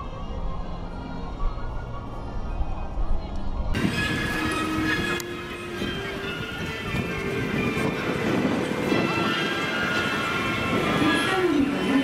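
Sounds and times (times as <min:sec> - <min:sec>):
monorail train whine: 0:00.0 - 0:12.0
wind rumble on microphone: 0:00.0 - 0:12.0.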